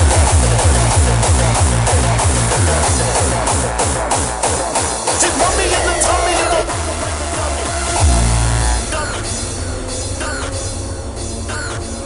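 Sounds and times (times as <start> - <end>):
deep bass notes: 0.0 - 12.0
hardcore electronic dance music: 0.0 - 12.0.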